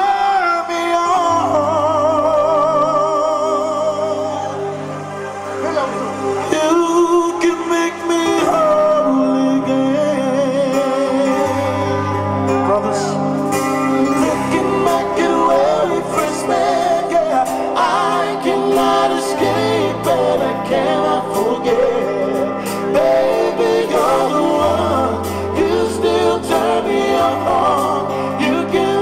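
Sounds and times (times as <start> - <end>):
band accompaniment: 3.3 - 29.0
man singing r and b: 6.4 - 13.3, 14.1 - 29.0.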